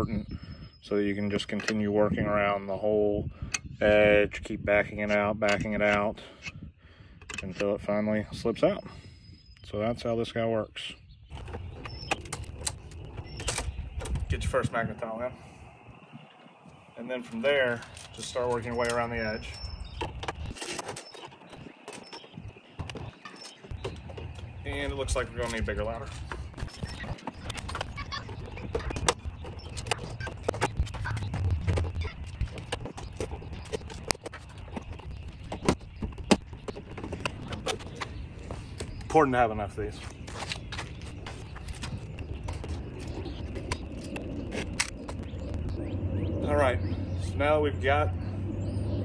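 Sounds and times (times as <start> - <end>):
low steady rumble: 41.0 - 49.0.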